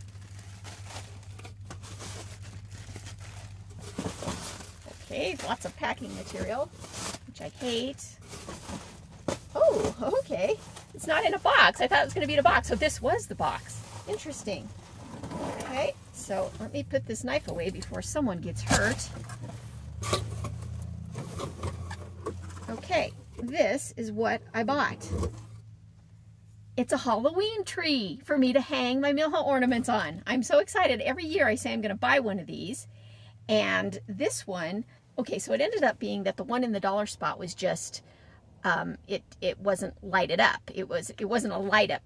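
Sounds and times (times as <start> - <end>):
plastic packing material crinkling: 0.0 - 14.9
cardboard box rustling and scraping: 3.7 - 16.7.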